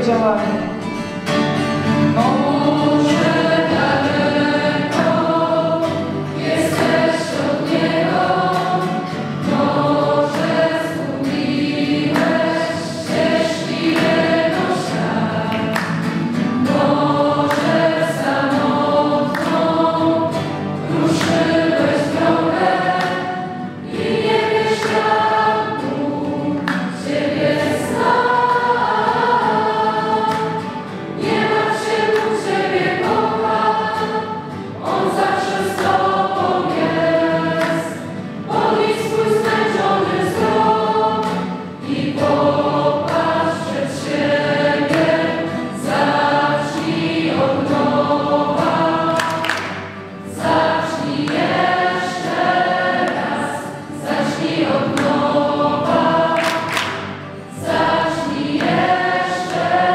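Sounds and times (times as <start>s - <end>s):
group singing religious song: 1.3s - 59.9s.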